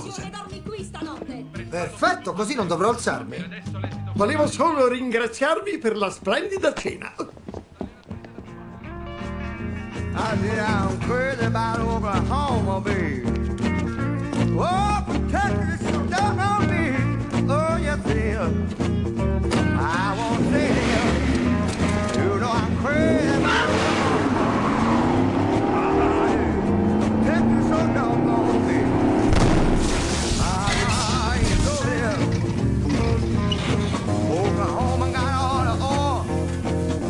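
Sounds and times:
car engine revving: 19.9s - 33.4s
tyres squealing: 20.0s - 29.2s, 30.0s - 34.2s
background song with singer: 30.1s - 36.4s.

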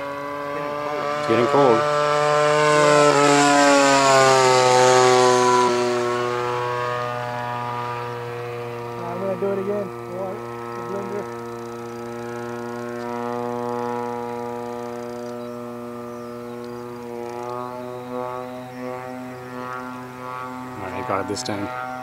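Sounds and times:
model airplane engine drone: 0.0s - 22.0s.

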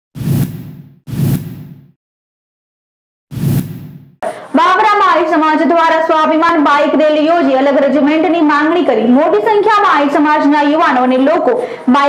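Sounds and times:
whoosh sound effect with deep rumble: 3.3s - 4.2s.

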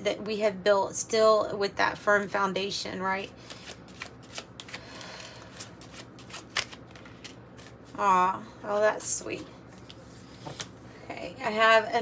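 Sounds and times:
cards being shuffled by hand: 3.4s - 8.0s, 9.7s - 10.8s.

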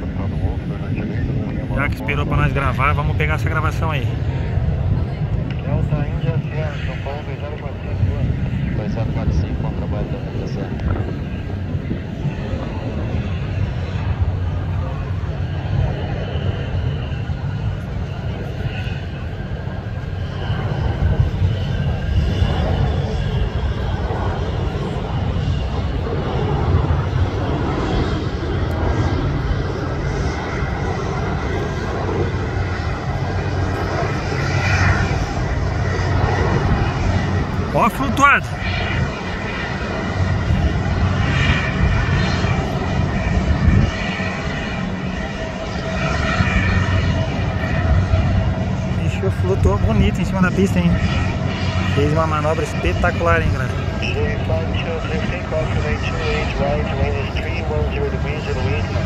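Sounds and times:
faint voices or radio chatter: 0.0s - 59.0s
jet engine rumble: 0.0s - 59.0s.

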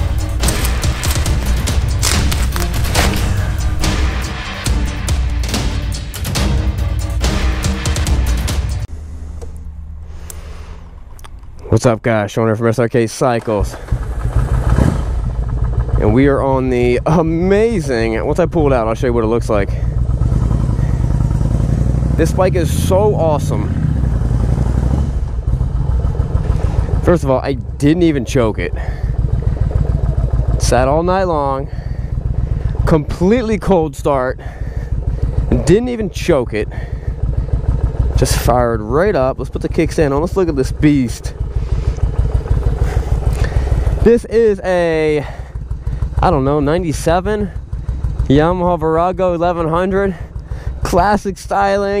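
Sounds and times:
motorcycle engine idling: 0.0s - 52.0s.

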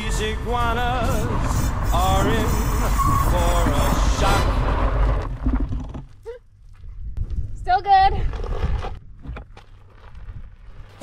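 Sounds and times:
bike skidding on gravel: 0.0s - 5.6s
low rumble: 0.0s - 11.0s
knocks and crunches of gravel: 4.4s - 11.0s.

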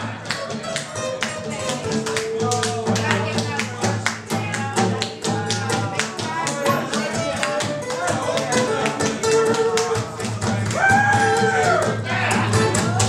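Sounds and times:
acoustic guitars playing blues: 0.0s - 13.0s.

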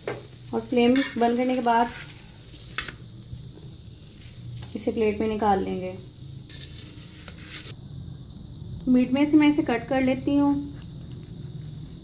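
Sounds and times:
metal tongs scraping on griddle: 0.0s - 4.9s, 6.5s - 7.7s.

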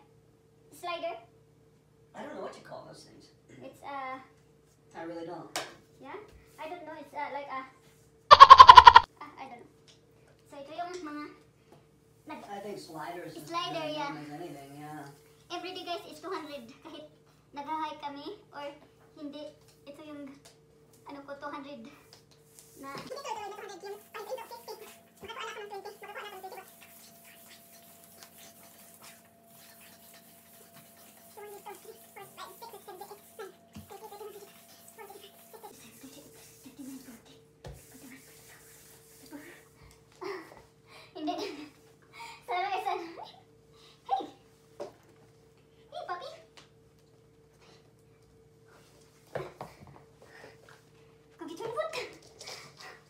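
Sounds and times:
dog whining yowl: 8.3s - 9.1s.

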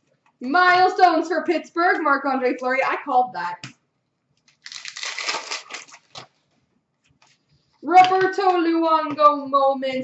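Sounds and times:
crinkly rustle of wrapper and cards: 4.4s - 6.6s.

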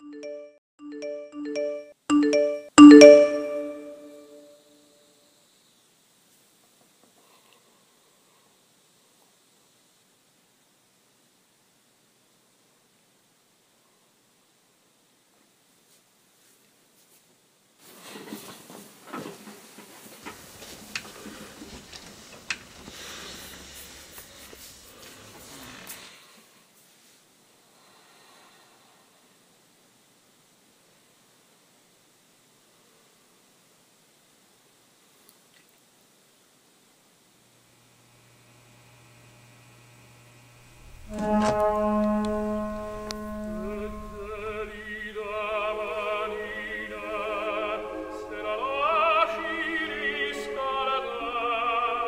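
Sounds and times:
wavering melody line: 0.0s - 4.5s
faint hiss: 4.2s - 41.7s
bowed strings holding a chord: 40.8s - 45.2s.

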